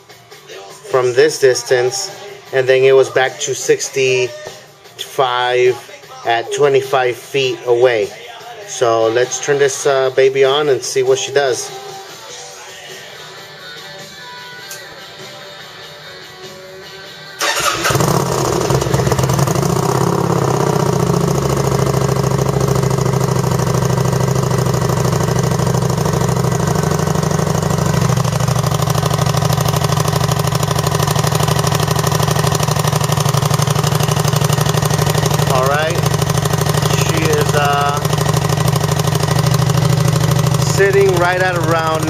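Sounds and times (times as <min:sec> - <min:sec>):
motorcycle engine starting and idling: 0:17.4 - 0:42.0.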